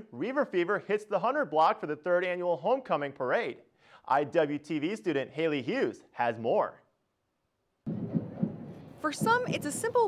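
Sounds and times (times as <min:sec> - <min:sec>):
low thumps: 0:07.9 - 0:10.0.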